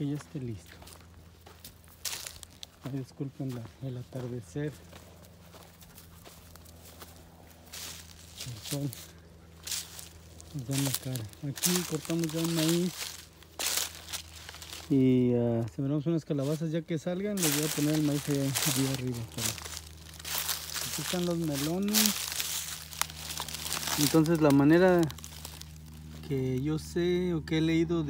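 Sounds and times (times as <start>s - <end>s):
faint crackling rustles: 0.0s - 27.2s
footstep crunching dry straw: 0.0s - 27.8s.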